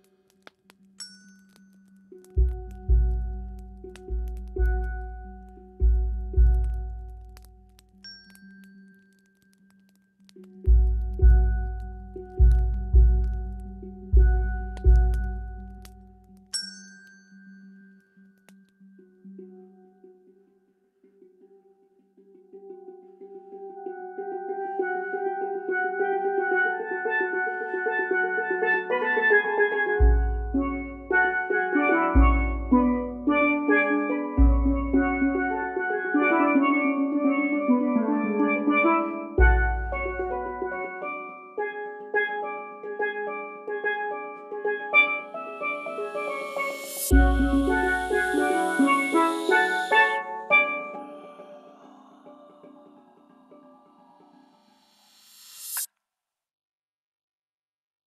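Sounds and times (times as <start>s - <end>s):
steel pans rolling notes: 24.2s - 54.7s
bass drum hits: 32.2s - 33.3s.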